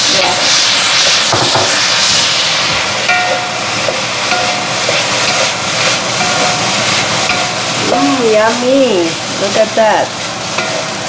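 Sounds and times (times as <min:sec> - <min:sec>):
rice sizzling in a wok: 0:00.0 - 0:11.0
wooden spatula scraping pan: 0:03.8 - 0:08.8.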